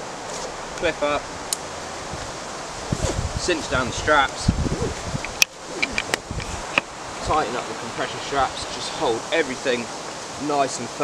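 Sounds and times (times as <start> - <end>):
wind through leaves: 0.0 - 11.0.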